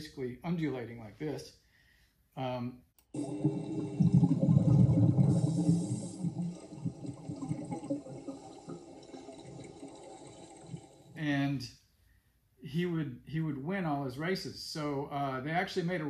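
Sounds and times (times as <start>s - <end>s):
water rushing underwater: 3.2s - 11.2s.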